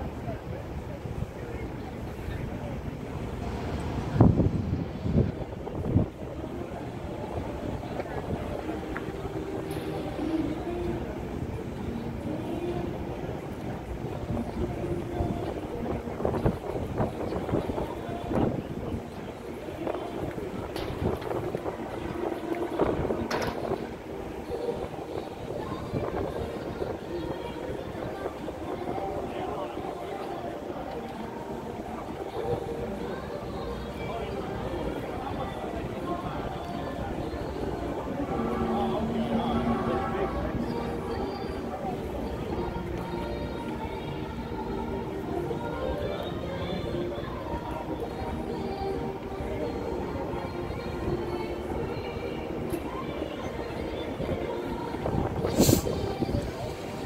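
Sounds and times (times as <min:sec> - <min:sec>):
wind buffeting microphone: 0:00.0 - 0:30.5, 0:53.9 - 0:57.0
indistinct voices: 0:00.0 - 0:57.0.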